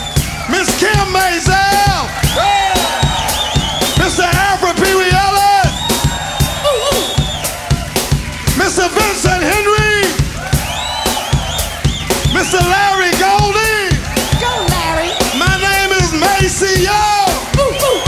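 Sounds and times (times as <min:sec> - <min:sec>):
funk band with horns and drums: 0:00.0 - 0:18.0
people shouting: 0:00.0 - 0:18.0.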